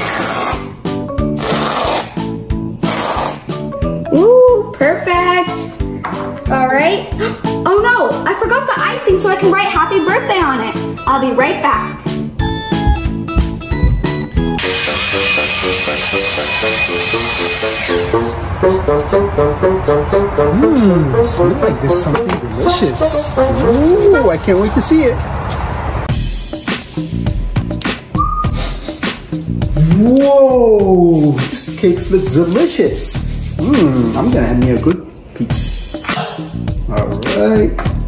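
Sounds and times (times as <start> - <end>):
aerosol whipped cream hissing: 0.0 - 0.7, 1.3 - 2.2, 2.8 - 3.5
background music: 0.0 - 25.1, 26.1 - 38.0
loud hiss with high whistle: 14.6 - 18.3.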